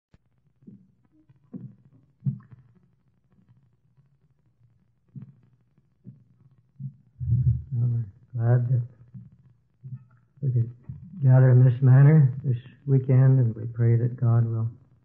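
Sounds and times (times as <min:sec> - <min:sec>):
person speaking low: 0:07.2 - 0:08.8, 0:10.4 - 0:14.7.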